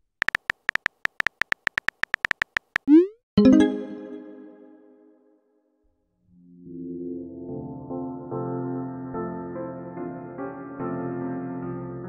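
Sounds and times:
short high electronic beeps: 0.2s - 3.6s.

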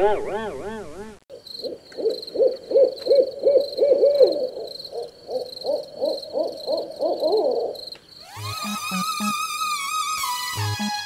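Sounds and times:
owl hooting: 0.0s - 10.2s
night insects chirring: 1.3s - 11.0s.

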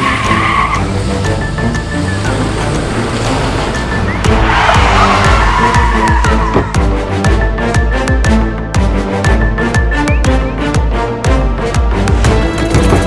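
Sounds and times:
tyres squealing on asphalt: 0.0s - 7.0s
dramatic soundtrack music: 0.0s - 13.0s.

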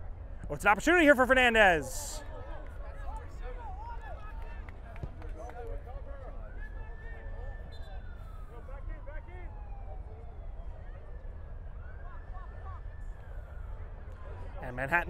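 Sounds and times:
players shouting: 0.5s - 2.2s
emergency siren wailing: 6.0s - 14.7s.

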